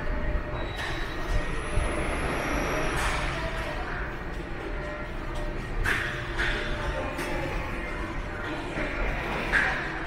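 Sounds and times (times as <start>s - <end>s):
subway station rumble and hiss: 0.0s - 10.0s.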